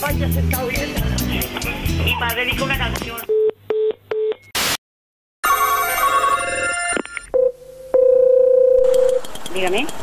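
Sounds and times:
telephone ringback tone: 5.4s - 9.2s
telephone ringing: 5.4s - 9.2s
telephone busy tone beep: 5.5s - 9.2s.

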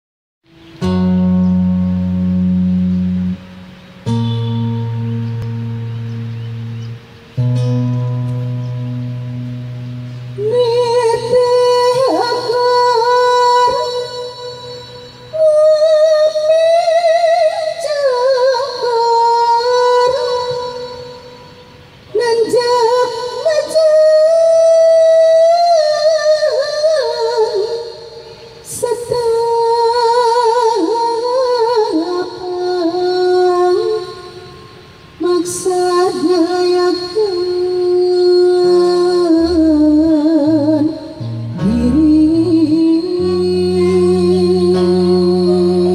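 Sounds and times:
plucked zither notes: 0.7s - 16.0s, 39.4s - 45.9s
woman singing: 8.4s - 45.9s.

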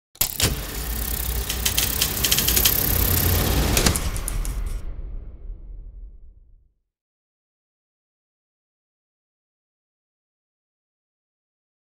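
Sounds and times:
film projector rattling: 0.2s - 4.7s
low hum: 0.2s - 6.8s.

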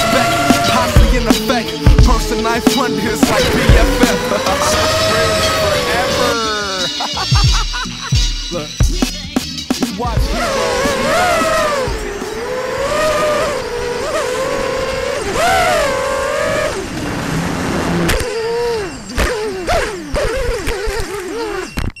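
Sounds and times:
drone motors whining: 0.0s - 22.0s.

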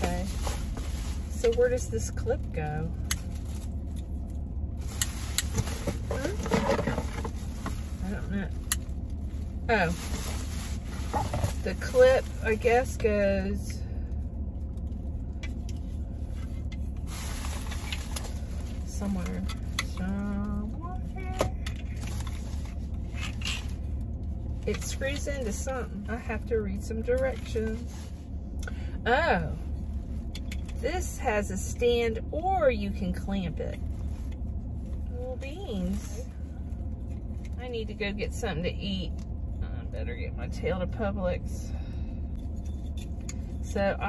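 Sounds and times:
low car cabin hum: 0.0s - 44.0s.

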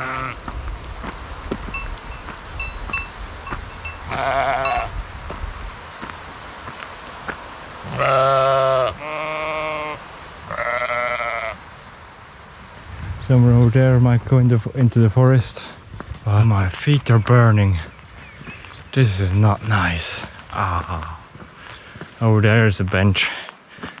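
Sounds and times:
sheep bleating: 0.0s - 0.4s, 3.8s - 4.9s, 7.8s - 11.6s.

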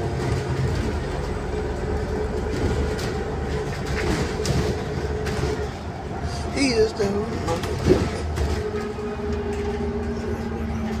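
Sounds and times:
bus drivetrain hum: 0.0s - 11.0s
low road rumble: 0.0s - 11.0s.

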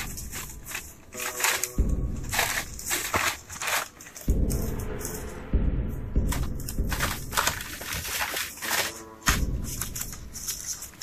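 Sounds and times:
paper crinkling and rustling: 0.0s - 4.4s, 6.4s - 11.0s
low rumble: 4.2s - 8.0s.

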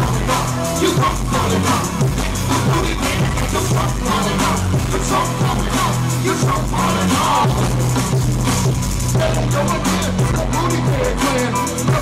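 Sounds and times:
bass line: 0.0s - 12.0s
drum kit beat: 0.0s - 12.0s
keyboards: 0.0s - 12.0s.

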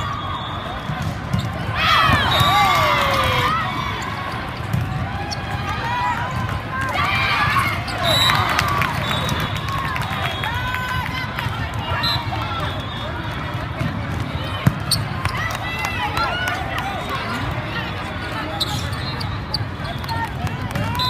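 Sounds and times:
shoes squeaking on court: 14.6s - 15.4s.

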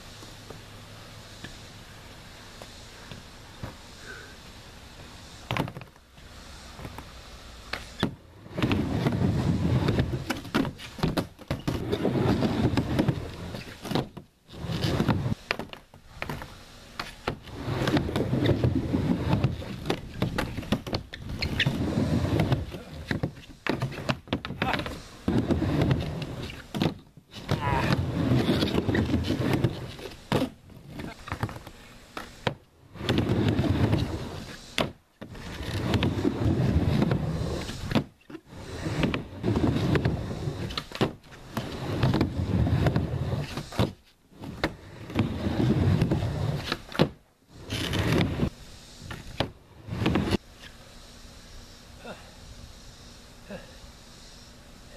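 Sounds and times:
skateboard wheels rolling on ramp: 0.2s - 50.7s.

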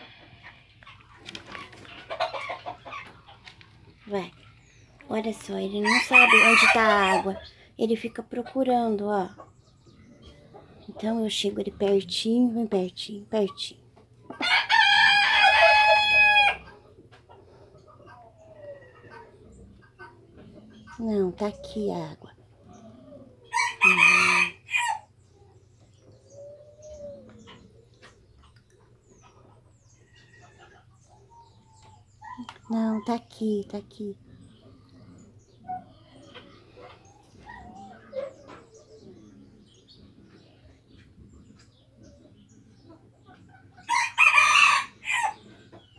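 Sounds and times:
rooster crowing: 5.9s - 7.3s, 14.4s - 16.6s, 23.5s - 25.1s, 43.9s - 45.4s.

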